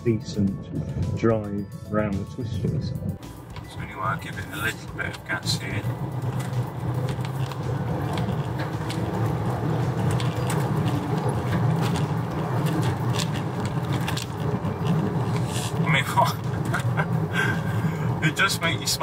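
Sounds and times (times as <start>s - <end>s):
car engine and road noise: 0.0s - 19.0s
person laughing: 16.1s - 18.1s.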